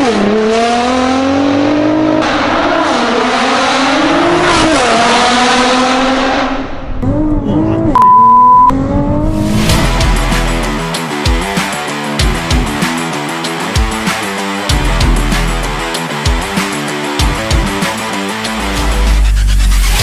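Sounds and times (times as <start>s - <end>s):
car engine accelerating hard: 0.0s - 8.0s, 8.7s - 10.9s
steady high beep: 8.0s - 8.7s.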